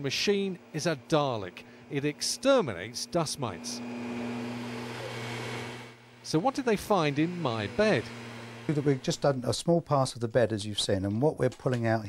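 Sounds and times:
vacuum machine motor hum: 0.6 - 9.6.

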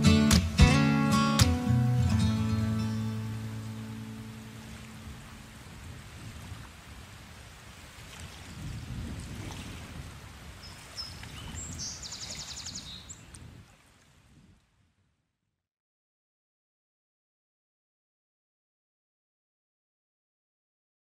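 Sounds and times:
acoustic guitar chord: 0.0 - 5.4.

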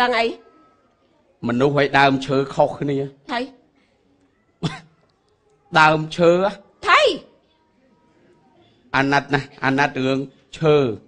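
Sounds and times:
man coughing: 4.6 - 5.0.

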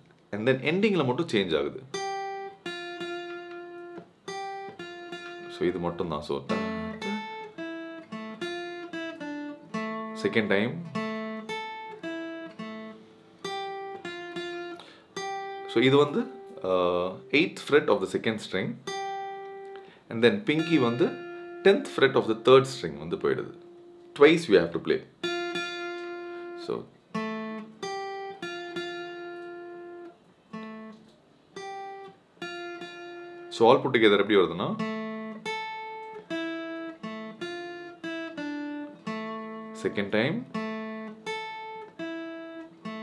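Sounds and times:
acoustic guitar plucked notes: 0.5 - 43.0.

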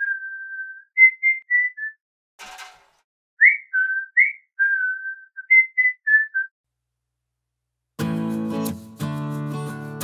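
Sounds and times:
person whistling a tune: 0.0 - 2.0, 3.4 - 6.5.

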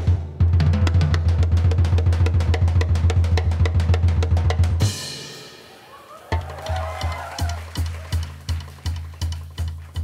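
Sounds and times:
jazz drum kit playing: 0.0 - 10.0.

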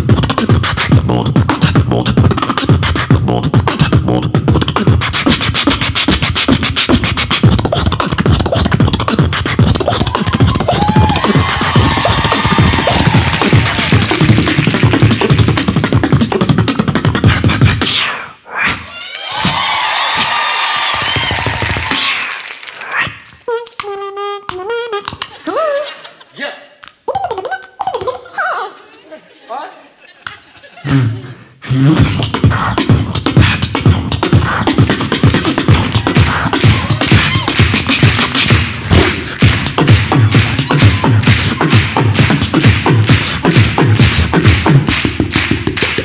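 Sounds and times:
person beatboxing: 0.0 - 19.6, 21.4 - 25.6, 26.4 - 28.4, 30.8 - 46.0
vocal melody sliding: 0.0 - 19.6, 21.8 - 28.6, 30.8 - 46.0
sharp mouth clicks: 26.8 - 28.2.

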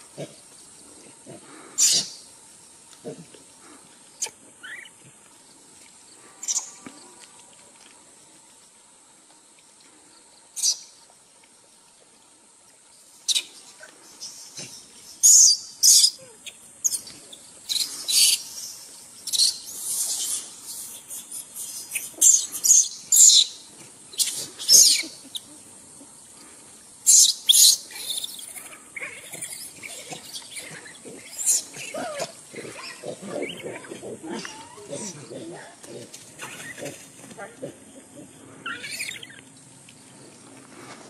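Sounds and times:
baby monkey shrieking: 24.2 - 25.1, 38.6 - 39.4.

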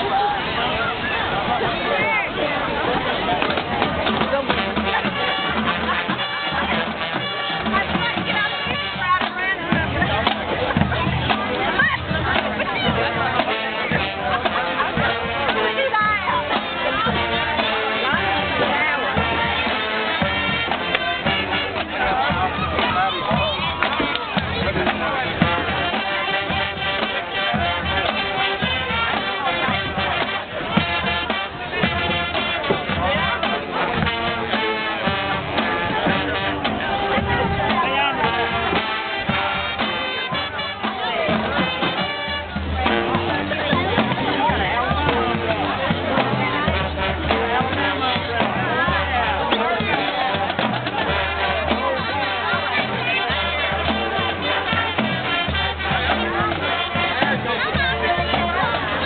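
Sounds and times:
marching band playing: 0.0 - 59.0
held horn chords: 2.8 - 59.0
drum strikes: 3.0 - 59.0.

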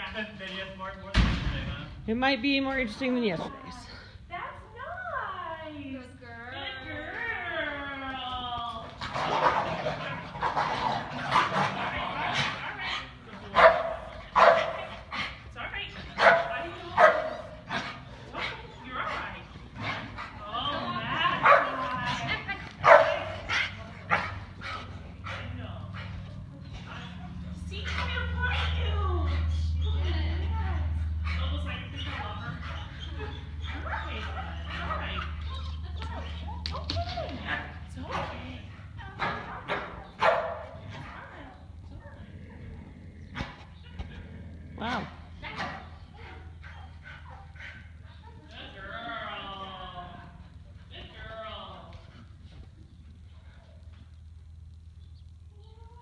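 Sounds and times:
dog barking: 13.5 - 15.0, 16.2 - 17.5, 21.4 - 21.8, 22.8 - 24.4, 39.6 - 40.8.

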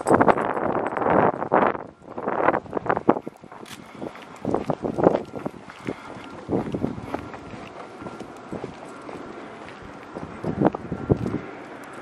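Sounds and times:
running footsteps on asphalt: 0.0 - 12.0
wind buffeting microphone: 0.0 - 12.0.

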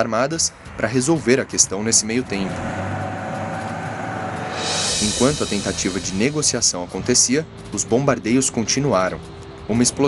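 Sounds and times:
vehicle engine running: 1.8 - 7.7
bright hiss: 2.8 - 6.9.

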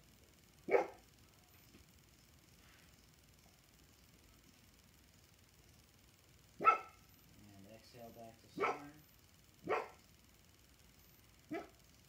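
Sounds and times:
dog barking: 0.7 - 1.0, 6.6 - 7.0, 8.6 - 9.0, 9.6 - 10.0, 11.5 - 11.8.

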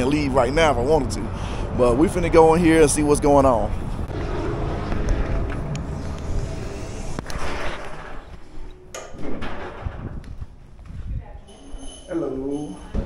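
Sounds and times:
wind rumbling on microphone: 0.2 - 11.5.

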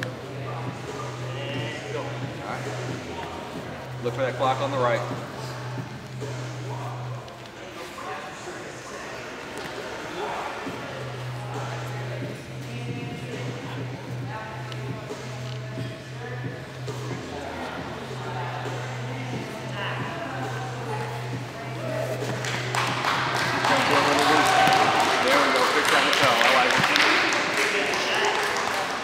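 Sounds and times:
echoing chatter in gym hall: 0.0 - 29.0.

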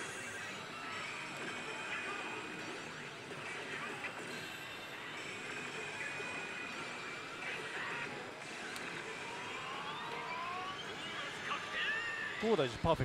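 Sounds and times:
slot machine electronic effects: 0.0 - 12.6
pachinko parlor din: 0.0 - 13.0.

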